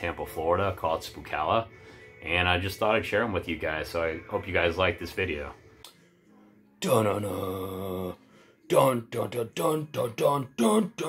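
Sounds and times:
man chanting a held note: 6.8s - 11.0s.

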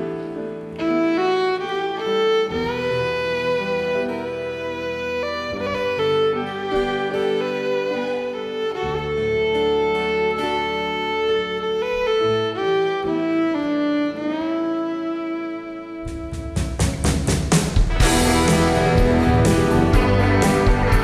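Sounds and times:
fiddle playing slow melody: 0.0s - 21.0s
guitar strums: 16.0s - 21.0s
drum hits: 16.1s - 21.0s.

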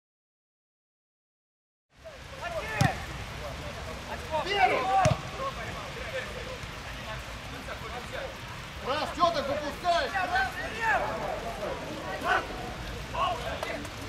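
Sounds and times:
steady outdoor hiss: 1.9s - 14.0s
players shouting: 2.3s - 3.4s, 4.0s - 14.0s
ball being kicked: 5.0s - 5.2s.

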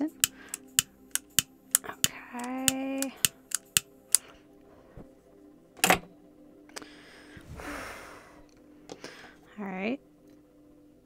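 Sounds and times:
lighter clicking: 0.1s - 4.2s
lighter snap: 0.2s - 4.2s.

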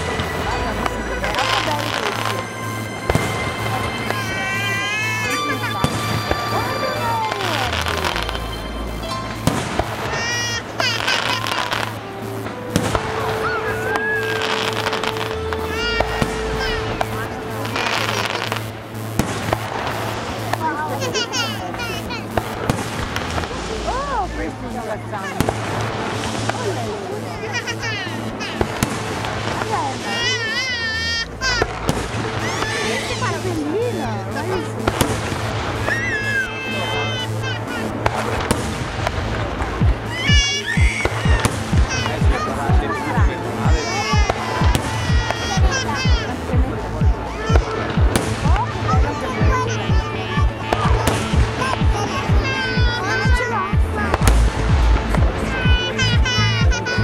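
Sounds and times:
fireworks bursting with sharp bangs: 0.0s - 57.0s
loud music with steady beat: 0.0s - 57.0s
voices: 0.0s - 57.0s.

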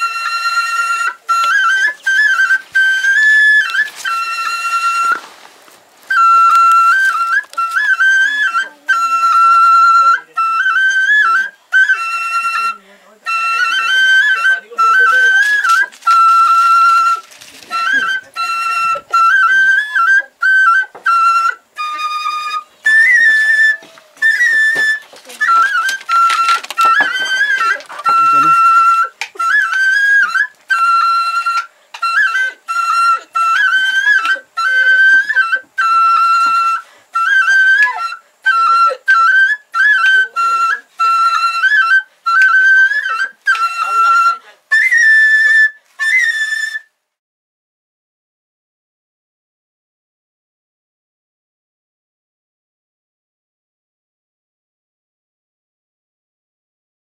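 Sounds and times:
solo flute slow melody: 0.0s - 47.2s.

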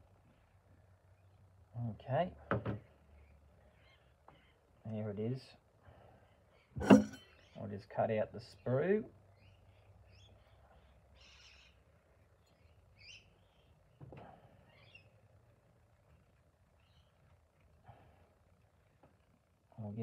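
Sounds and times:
faint bird calls: 3.0s - 4.8s, 9.3s - 15.2s
soft knife knock: 6.8s - 7.2s.

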